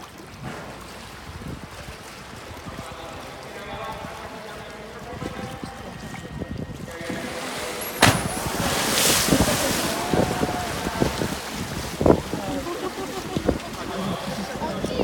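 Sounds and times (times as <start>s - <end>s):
churning water: 0.0s - 15.0s
loud splash: 6.9s - 14.3s.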